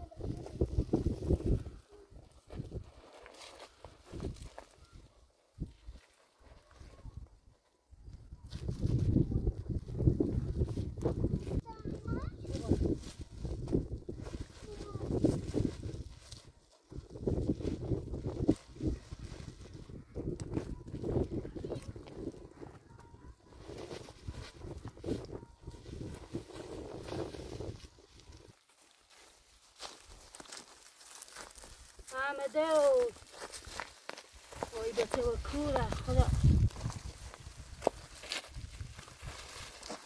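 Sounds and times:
footsteps on stony ground and leaves: 0:00.2 - 0:40.0.

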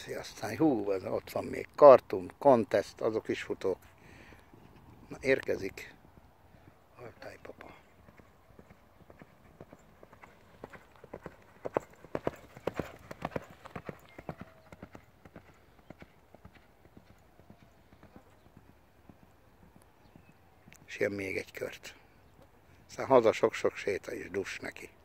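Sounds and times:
horse hoofbeats on sand: 0:07.6 - 0:21.0.

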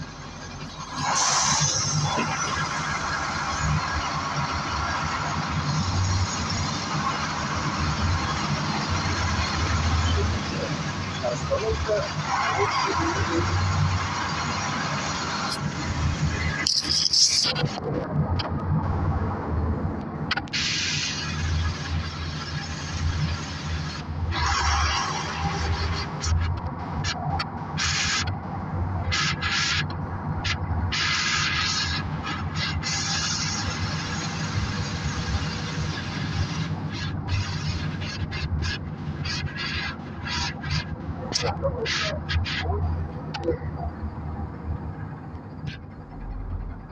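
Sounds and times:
bus engine drone: 0:00.0 - 0:46.9
road noise: 0:00.0 - 0:46.9.

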